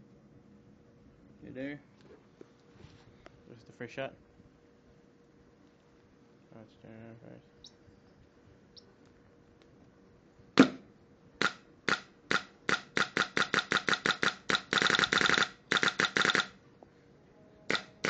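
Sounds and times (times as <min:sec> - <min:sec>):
paintball marker firing: 0:10.6 - 0:16.6, 0:17.7 - 0:18.0.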